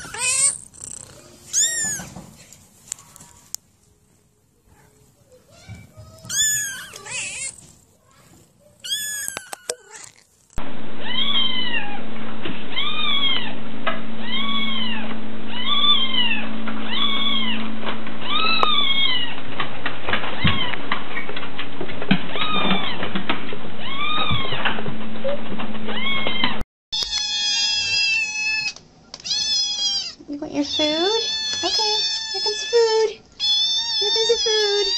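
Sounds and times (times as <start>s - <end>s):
cats meowing: 0.0s - 2.3s, 5.4s - 12.0s, 12.7s - 13.5s, 14.2s - 17.6s, 18.2s - 19.4s, 20.4s - 20.8s, 22.3s - 23.1s, 23.8s - 24.6s, 25.9s - 34.9s
steady low hum: 11.9s - 22.3s.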